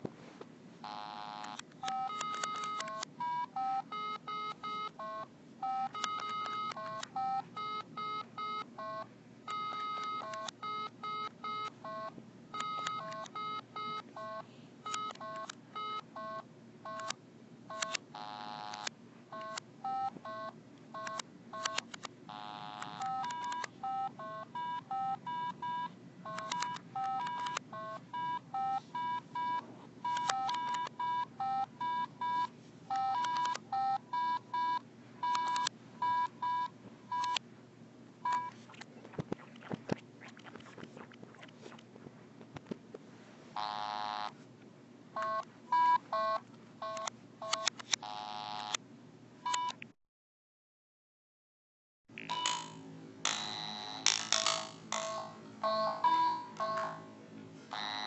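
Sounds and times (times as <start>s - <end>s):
electronic toy beeping: 0.9s - 37.4s, 45.2s - 48.8s, 52.2s - 57.1s, 57.7s - 58.0s.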